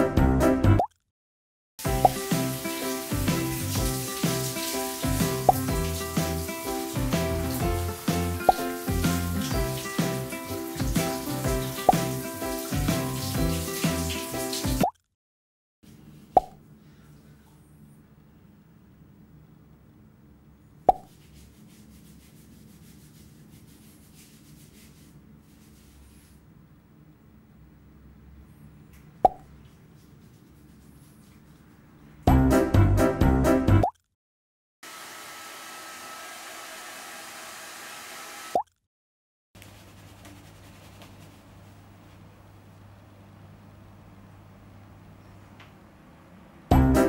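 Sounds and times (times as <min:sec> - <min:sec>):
background music with a beat: 0:01.8 - 0:04.1, 0:05.0 - 0:14.1, 0:46.7 - 0:47.0
soap scrubbing wet hair: 0:01.8 - 0:14.8, 0:21.1 - 0:26.3, 0:29.6 - 0:31.9, 0:39.6 - 0:42.3
shower water spraying: 0:01.8 - 0:14.9, 0:34.9 - 0:38.6
sharp wet plop: 0:01.9 - 0:02.4, 0:05.0 - 0:06.1, 0:08.1 - 0:09.2, 0:10.8 - 0:13.1, 0:16.4 - 0:16.6, 0:20.9 - 0:21.1, 0:29.2 - 0:29.5.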